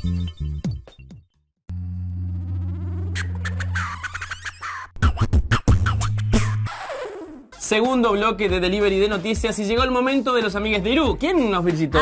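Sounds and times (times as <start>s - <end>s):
held low synth note: 1.7s - 3.8s
rising synth sweep: 1.7s - 4.4s.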